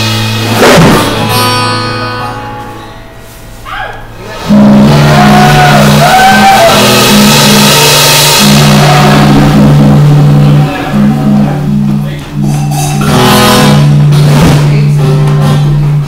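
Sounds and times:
pulsing bass line: 0.0 - 3.2, 4.2 - 16.0
guitar chord ringing: 0.0 - 3.4, 4.4 - 15.8
live rock band playing: 0.0 - 3.6, 4.3 - 16.0
cymbals crashing: 0.0 - 16.0.

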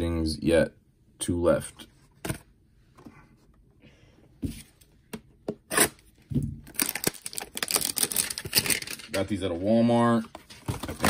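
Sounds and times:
cardboard tearing and crinkling: 6.7 - 9.0.

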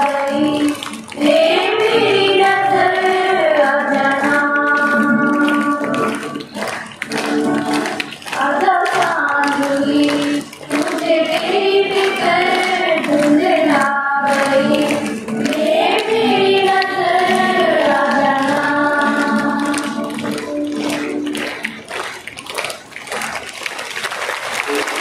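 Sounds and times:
children's choir singing: 0.0 - 21.7
acoustic guitar: 0.0 - 23.6.

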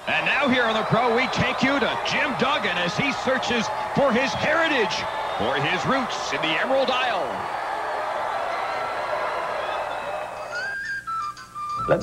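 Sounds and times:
arena crowd noise: 0.0 - 11.0
whistle melody: 9.5 - 12.0.

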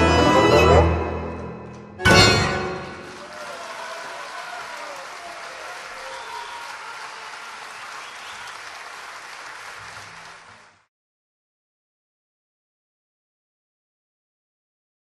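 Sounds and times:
audience applauding: 2.4 - 10.9.

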